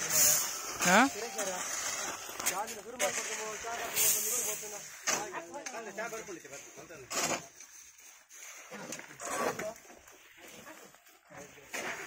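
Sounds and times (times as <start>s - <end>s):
people calling out and talking: 0.0s - 3.3s.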